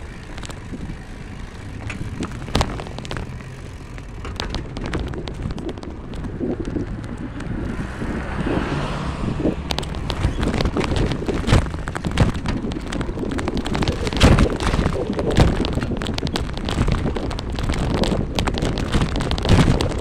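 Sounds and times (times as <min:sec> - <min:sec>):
vehicle rattles and knocks: 0:00.0 - 0:20.0
wind rumbling on microphone: 0:00.0 - 0:20.0.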